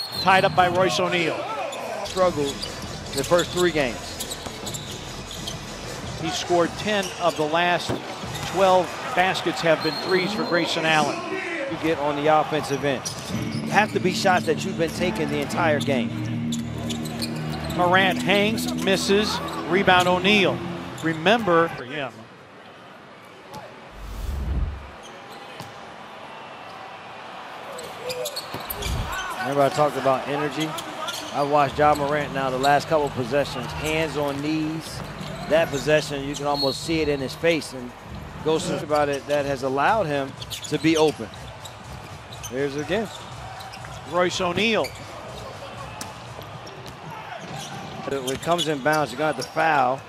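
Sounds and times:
low arena background: 0.0s - 25.2s, 27.6s - 50.0s
low thump: 24.0s - 25.0s.

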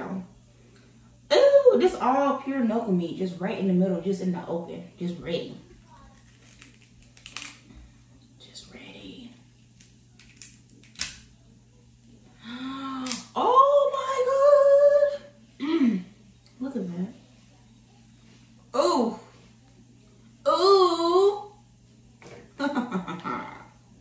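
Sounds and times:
crab shell cracking: 6.1s - 7.7s, 9.8s - 11.3s
woman humming mm: 15.6s - 16.2s.

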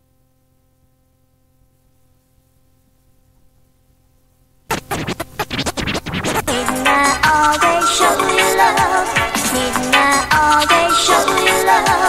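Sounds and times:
faint hum: 0.0s - 12.0s
rave dj mix: 4.7s - 12.0s
record scratching: 4.7s - 12.0s.

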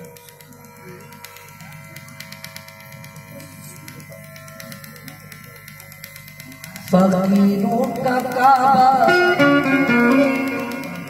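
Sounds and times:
harmonium chord: 0.0s - 11.0s.

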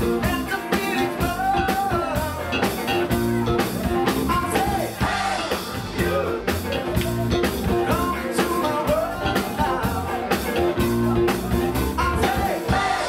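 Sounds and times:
bass guitar: 0.0s - 13.0s
drum kit beat: 0.0s - 13.0s
electric guitar: 0.0s - 13.0s
keyboards: 0.0s - 13.0s
man singing: 0.0s - 13.0s.

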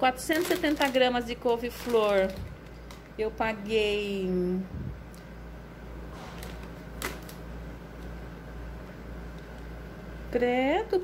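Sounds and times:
plastic wrap crinkling: 0.0s - 3.7s, 6.2s - 8.2s
steady low hum: 0.0s - 11.0s.

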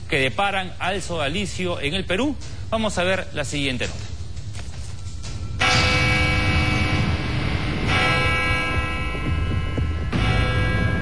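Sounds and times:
church bell tolling: 5.6s - 11.0s
low rumble: 6.4s - 11.0s.

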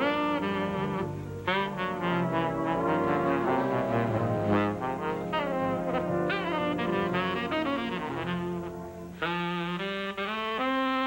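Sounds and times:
band accompaniment with piano: 0.0s - 11.0s
tenor saxophone jazz solo: 0.0s - 11.0s.

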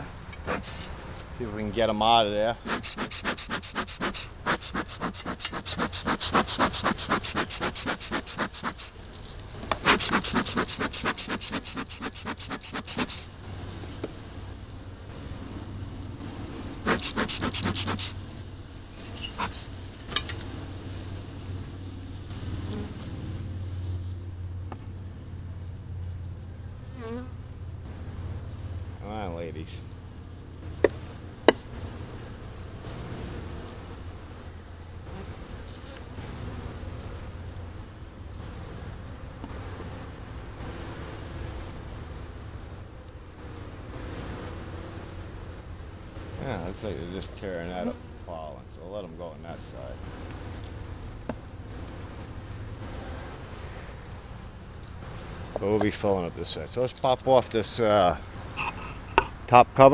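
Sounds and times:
bee smoker bellows puffs: 0.0s - 21.4s, 57.0s - 59.5s
honeybees buzzing: 0.0s - 24.3s, 26.4s - 56.3s
sharp ticks: 2.7s - 9.0s, 9.7s - 13.3s, 16.9s - 18.2s.

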